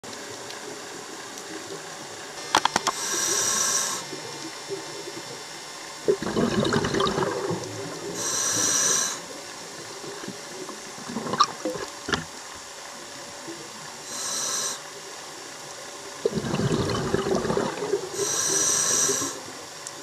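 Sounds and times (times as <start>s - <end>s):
sharp clicks: 2.4s - 3.0s
hissing regulator inhale: 2.8s - 4.3s, 8.0s - 9.9s, 14.0s - 15.0s, 16.2s - 19.6s
bubbling exhale: 6.0s - 9.4s, 10.0s - 12.3s, 16.2s - 19.6s.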